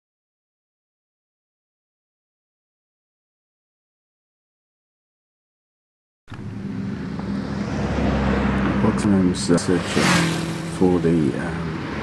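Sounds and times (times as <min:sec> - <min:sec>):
low vehicle hum: 0:06.3 - 0:12.0
road noise hiss: 0:06.3 - 0:12.0.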